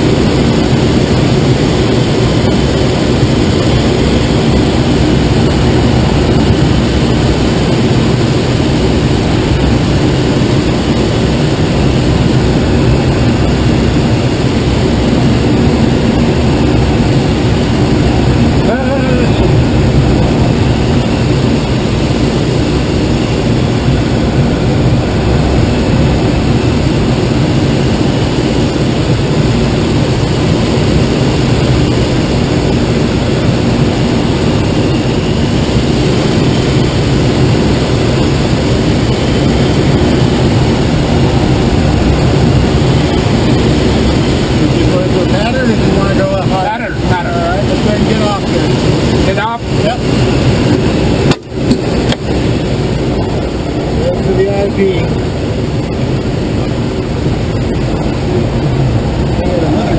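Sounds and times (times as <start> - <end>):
distant propeller engine drone: 0.0 - 59.9
rushing airflow: 0.0 - 59.9.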